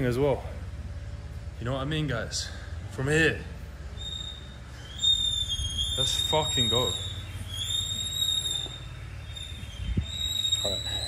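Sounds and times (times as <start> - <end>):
insects whining: 3.8 - 11.0.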